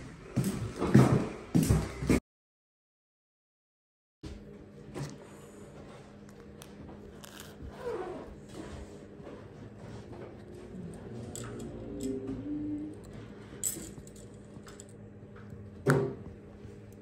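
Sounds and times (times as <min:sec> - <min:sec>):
steady low hum: 0:04.3 - 0:17.0.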